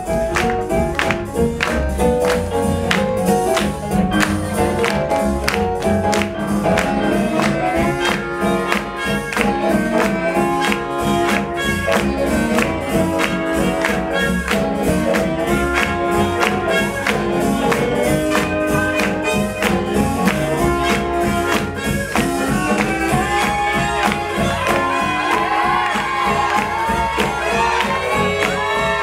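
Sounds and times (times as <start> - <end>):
swing jazz band playing: 0.0 - 29.0.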